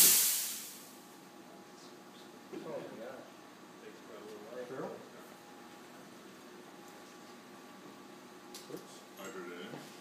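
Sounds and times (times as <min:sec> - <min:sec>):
compressed air hissing: 0:00.0 - 0:01.0.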